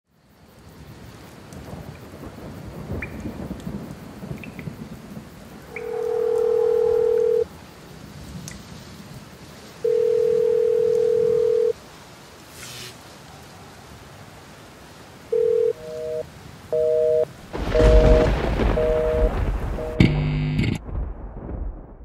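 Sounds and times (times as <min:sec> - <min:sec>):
rain: 0:00.1 - 0:22.0
thunder rumbling and cracking: 0:01.5 - 0:07.4, 0:17.4 - 0:22.0
electronic telephone-like tone: 0:05.8 - 0:07.5, 0:09.8 - 0:11.8, 0:15.3 - 0:20.8.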